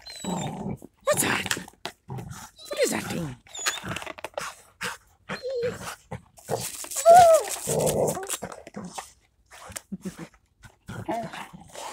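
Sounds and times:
dog whining: 0:00.0 - 0:01.2, 0:02.6 - 0:04.0, 0:05.3 - 0:05.9
dogs gnawing ice: 0:05.7 - 0:11.9.

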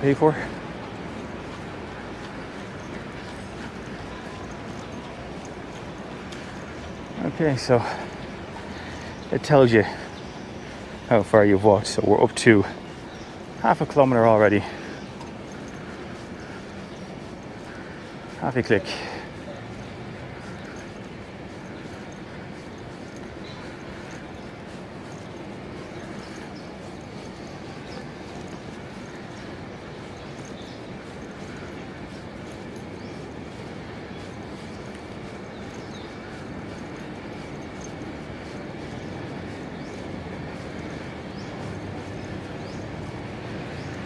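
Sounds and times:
city traffic rumble: 0:00.0 - 0:44.0
footsteps on paved path: 0:00.0 - 0:44.0
outdoor background hum: 0:00.0 - 0:44.0.

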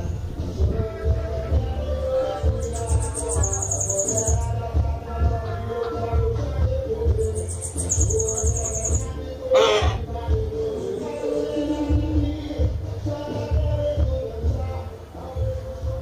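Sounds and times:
background music: 0:00.0 - 0:16.0
bird singing high-pitched trill: 0:02.0 - 0:04.8, 0:07.0 - 0:09.9.

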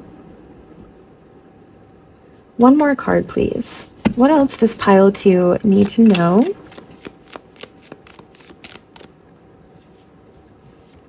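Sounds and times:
cards being shuffled: 0:05.6 - 0:09.1.

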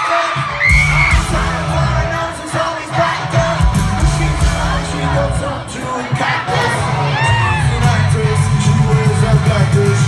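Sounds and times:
crowd screaming and cheering: 0:00.0 - 0:10.0
live rock music: 0:00.0 - 0:10.0.

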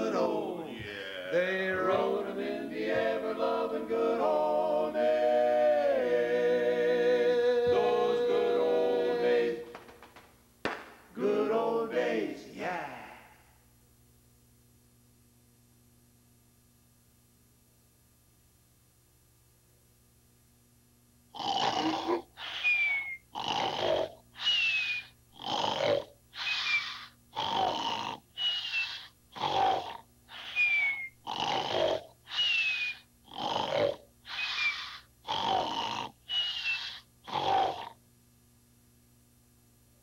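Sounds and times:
man snoring heavily: 0:21.4 - 0:38.0.

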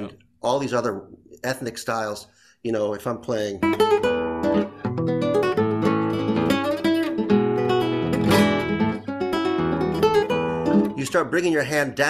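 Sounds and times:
classical guitar fingerstyle: 0:03.6 - 0:11.0.

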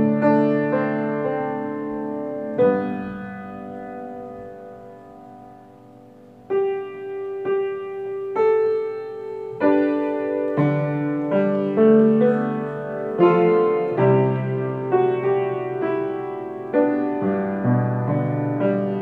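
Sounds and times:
piano chords: 0:00.0 - 0:19.0.

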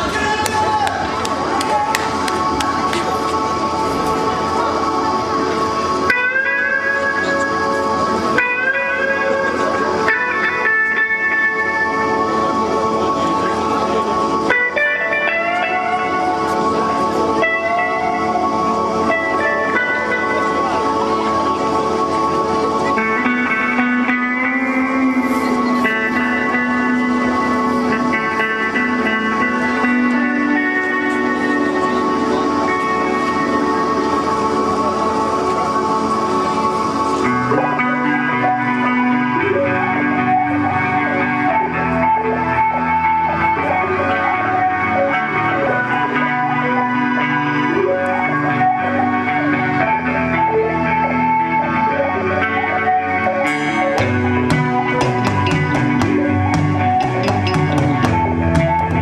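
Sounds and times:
electric guitar melody: 0:00.0 - 0:59.0
lower wavering melodic line: 0:02.4 - 0:59.0.

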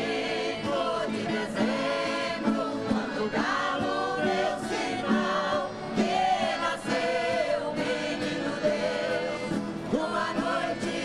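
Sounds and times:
acoustic guitars: 0:00.0 - 0:11.0
group singing in chorus: 0:00.0 - 0:11.0.

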